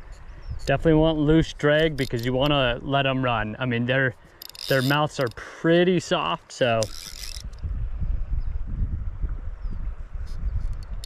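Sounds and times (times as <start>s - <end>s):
fishing reel rattling whir: 1.7s - 2.4s, 4.2s - 5.4s, 6.6s - 7.7s.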